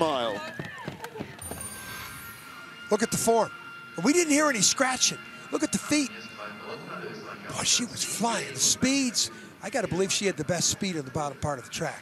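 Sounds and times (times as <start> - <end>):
shimmering electronic sound effect: 1.4 - 9.2
thin steady tones: 1.4 - 12.0.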